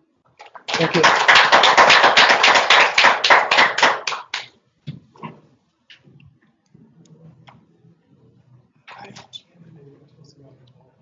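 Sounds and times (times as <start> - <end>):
audience applauding: 0.4 - 4.5.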